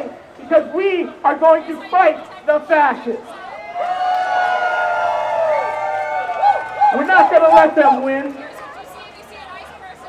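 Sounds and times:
crowd cheering and shouting: 3.3s - 8.9s.

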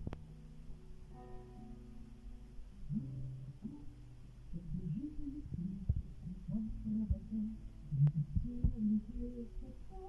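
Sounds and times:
person softly humming: 4.6s - 10.0s.

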